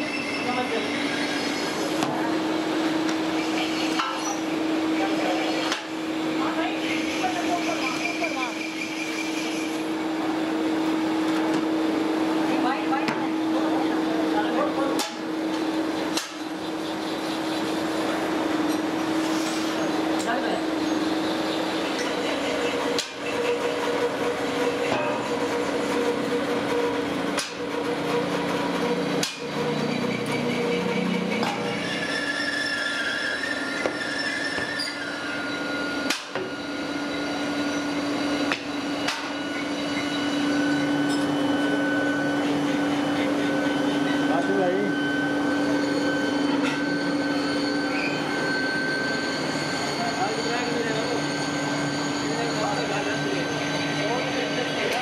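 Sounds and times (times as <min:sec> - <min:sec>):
foundry machinery hum and rushing: 0:00.0 - 0:55.0.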